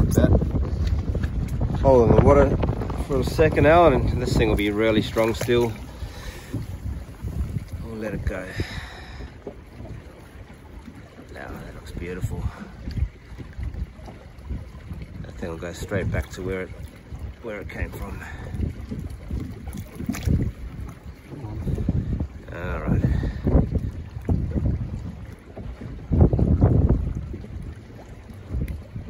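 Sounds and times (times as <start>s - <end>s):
water sloshing: 0.0s - 29.0s
wind rumble on microphone: 0.0s - 29.0s.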